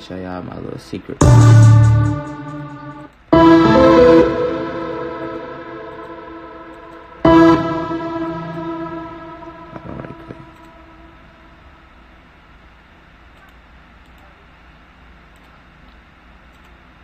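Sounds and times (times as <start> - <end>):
keyboard chords with echo: 1.2 - 11.1.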